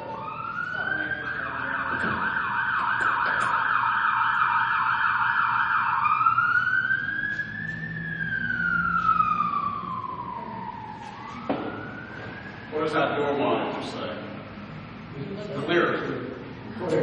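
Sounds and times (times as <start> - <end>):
emergency vehicle siren: 0.0 - 15.1.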